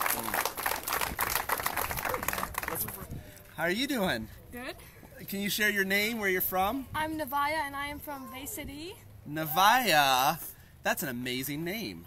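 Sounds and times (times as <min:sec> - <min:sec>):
crowd clapping: 0:00.0 - 0:03.1
voices: 0:00.0 - 0:12.0.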